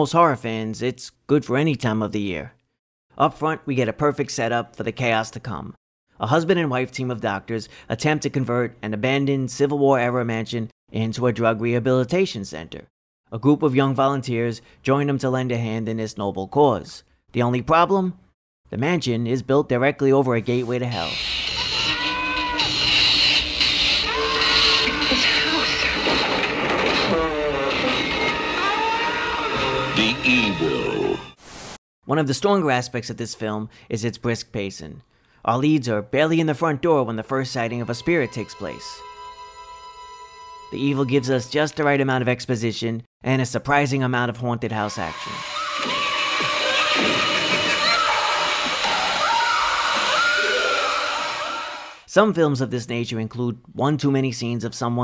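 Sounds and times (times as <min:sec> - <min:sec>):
screeching effects: 0:20.9 - 0:31.4, 0:44.8 - 0:52.1
shrill wailing with gliding pitch: 0:21.5 - 0:31.2, 0:44.9 - 0:52.0
eerie music: 0:22.3 - 0:31.4.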